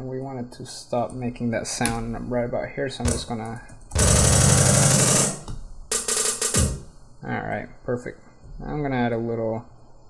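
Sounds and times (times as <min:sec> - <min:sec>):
drum hits: 0:03.0 - 0:07.0.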